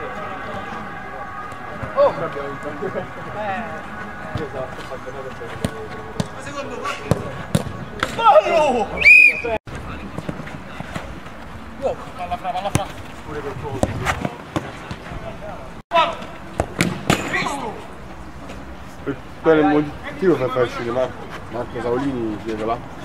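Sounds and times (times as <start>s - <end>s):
players shouting: 0.0s - 9.6s.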